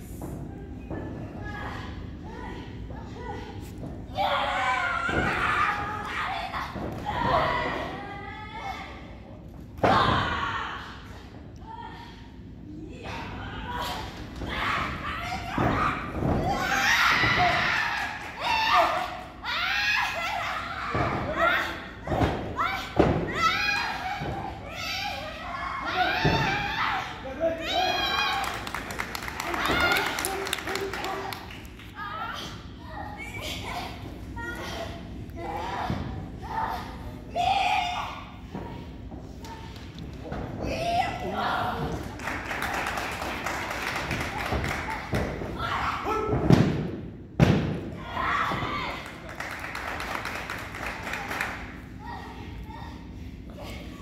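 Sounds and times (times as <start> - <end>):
people shouting: 12.9 - 28.4.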